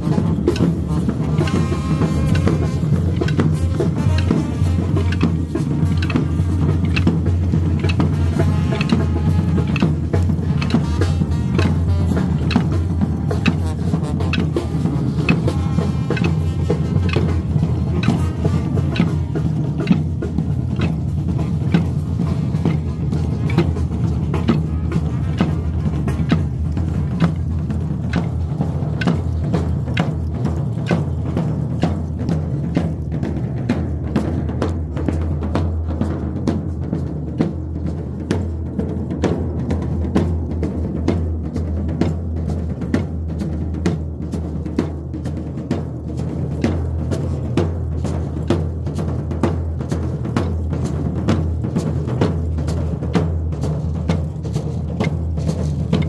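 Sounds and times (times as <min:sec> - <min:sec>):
bass drum beat: 0:00.0 - 0:56.0
brass band marching: 0:00.0 - 0:56.0.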